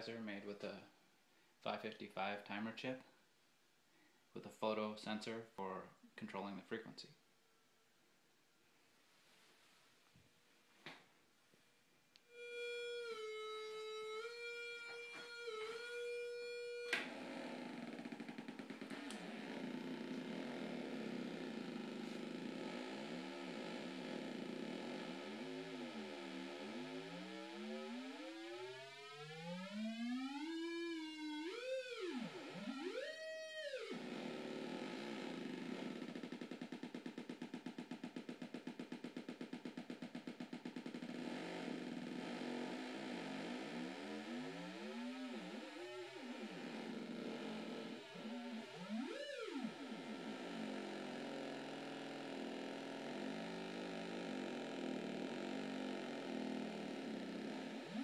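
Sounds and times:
buzzy synthesizer tone sliding in pitch: 12.3s - 58.0s.

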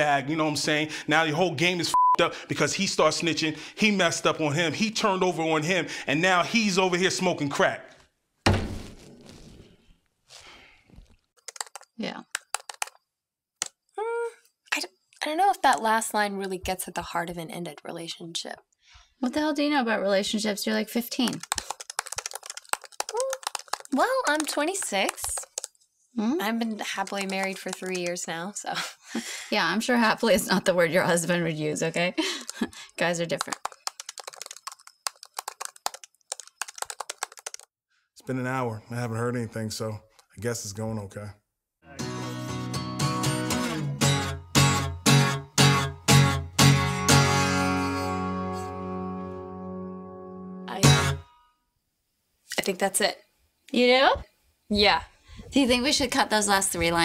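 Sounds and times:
heavy thunk: 8.4s - 9.0s
laptop keyboard typing: 11.4s - 13.0s, 21.1s - 25.8s, 26.7s - 28.5s, 32.4s - 37.8s
person humming mm: 14.0s - 14.4s.

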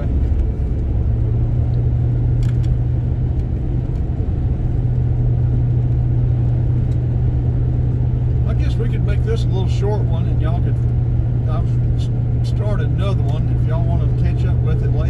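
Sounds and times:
car engine and tyres droning: 0.0s - 15.0s.

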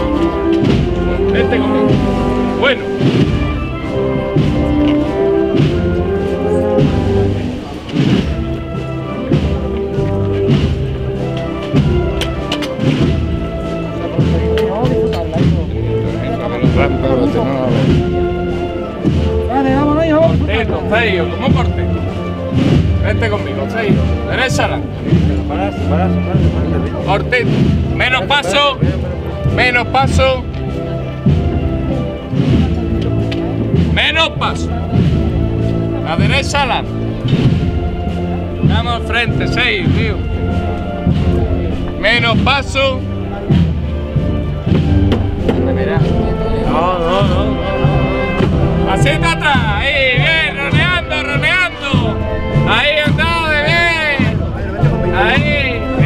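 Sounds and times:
low drum beats: 0.0s - 56.0s
men talking: 0.0s - 56.0s
wind band playing: 0.0s - 56.0s.

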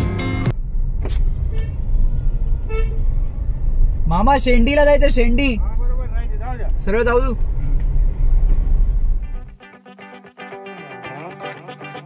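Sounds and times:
car engine and tyre road noise: 0.0s - 9.6s
faint horn toots: 1.4s - 3.4s
background music: 9.3s - 12.0s.

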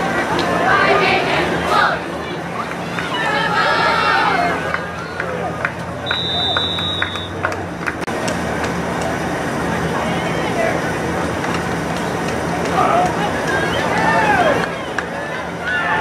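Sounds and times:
spectators chattering: 0.0s - 16.0s
referee's whistle: 6.0s - 7.4s.

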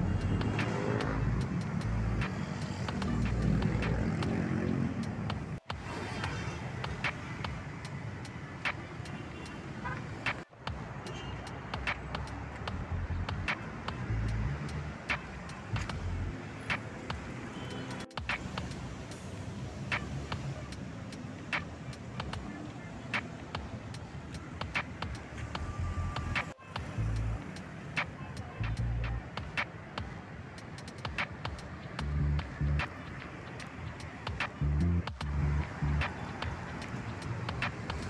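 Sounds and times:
passing cars rumbling: 0.0s - 38.0s.

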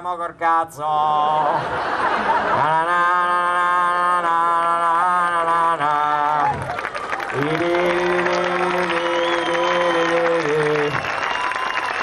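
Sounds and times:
man singing long note: 2.6s - 6.6s, 7.3s - 11.0s.

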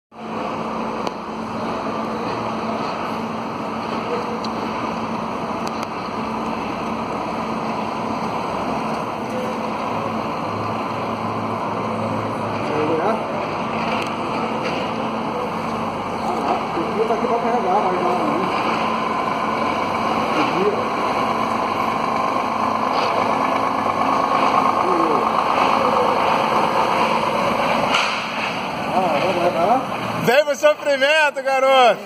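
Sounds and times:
truck diesel engine running: 0.2s - 32.0s.

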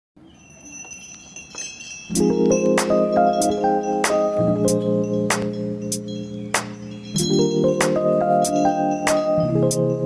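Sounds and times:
faint high ringing: 0.2s - 10.0s
light tinkles: 0.2s - 10.0s.

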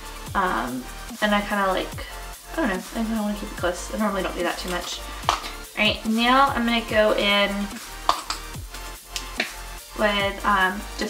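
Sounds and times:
electronic music kick drum: 0.0s - 0.8s, 1.6s - 11.0s
sharp snapping clicks: 5.2s - 5.6s, 8.0s - 8.5s, 9.1s - 9.6s.

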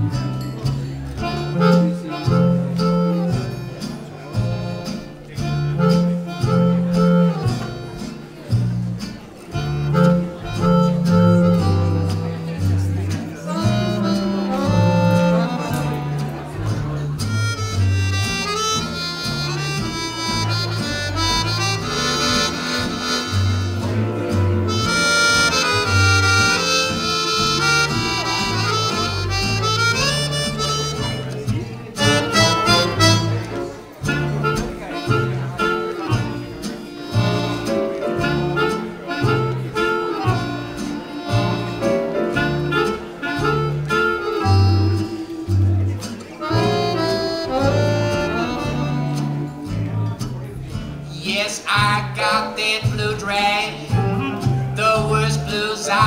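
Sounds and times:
acoustic swing jazz band: 0.0s - 56.0s
walking bass: 0.0s - 56.0s
sustained lead melody: 9.2s - 50.2s.

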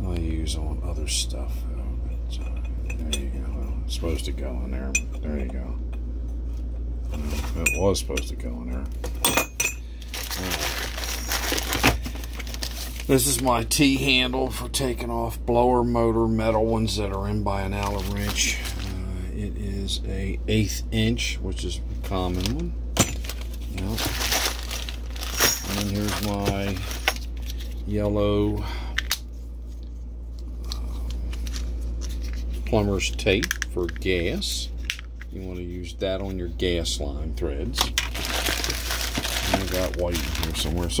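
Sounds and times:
steady low hum: 0.0s - 41.0s
plastic bags crinkling: 10.0s - 13.4s, 17.6s - 19.0s, 23.2s - 27.9s, 37.8s - 41.0s
rummaging in plastic toolbox: 10.1s - 13.1s, 23.2s - 27.7s, 37.8s - 41.0s.

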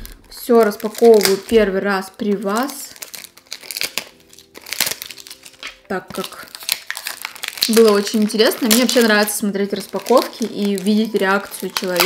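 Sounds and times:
packaging crinkling and rustling: 0.0s - 12.0s.

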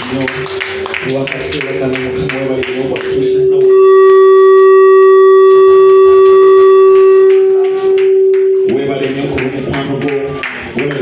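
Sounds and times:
high electronic tone: 2.3s - 9.8s.

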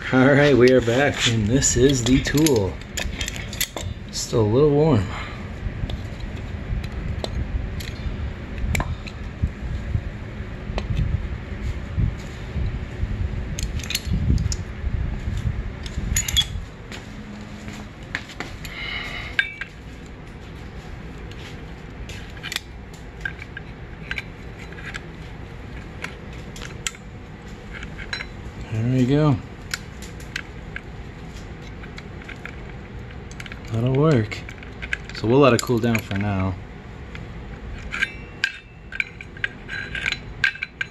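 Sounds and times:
low rumble: 0.0s - 33.9s
metal clinks and clicks: 0.6s - 3.9s, 15.8s - 16.6s, 27.7s - 29.1s, 37.8s - 40.9s.

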